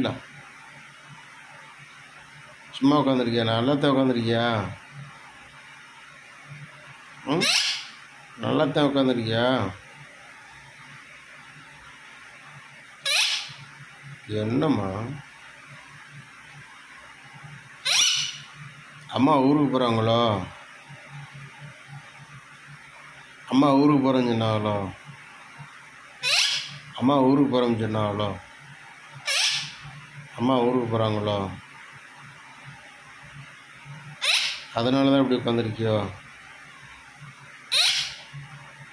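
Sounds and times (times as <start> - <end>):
parakeet screeching: 7.3 - 8.0, 13.0 - 13.7, 17.8 - 18.6, 26.2 - 26.9, 29.2 - 29.9, 34.2 - 34.8, 37.7 - 38.3
person speaking: 30.4 - 31.6.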